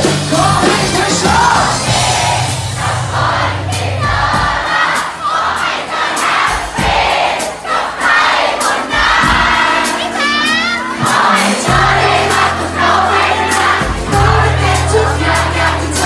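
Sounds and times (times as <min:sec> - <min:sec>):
crowd singing and shouting: 0:00.0 - 0:16.0
drums and cymbal hits: 0:00.0 - 0:16.0
live pop-rock band: 0:00.0 - 0:16.0.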